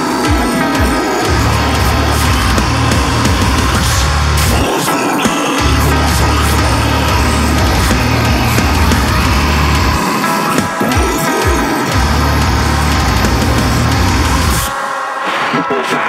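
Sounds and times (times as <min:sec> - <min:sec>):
guttural vocal: 0:00.0 - 0:14.7
heavy metal guitars bass and drums: 0:00.0 - 0:16.0.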